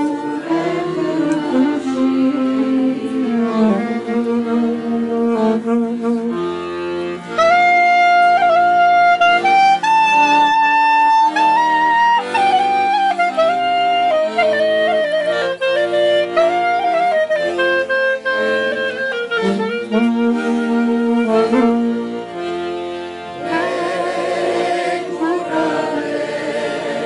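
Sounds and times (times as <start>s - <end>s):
small band playing slow tune: 0.0s - 27.0s.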